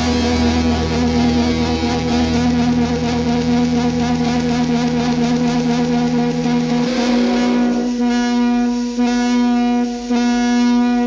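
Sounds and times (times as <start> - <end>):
electric guitars droning chord: 0.0 - 11.0.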